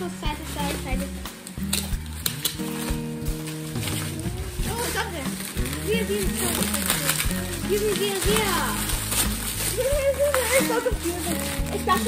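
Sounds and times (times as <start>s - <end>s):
background music: 0.0s - 12.0s
plastic wrap crinkling: 0.0s - 12.0s.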